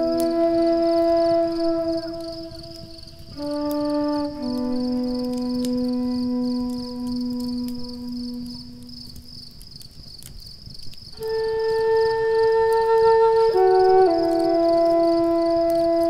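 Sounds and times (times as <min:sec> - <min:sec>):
flute long notes: 0:00.0 - 0:09.3, 0:11.1 - 0:16.0
campfire crackling: 0:00.0 - 0:16.0.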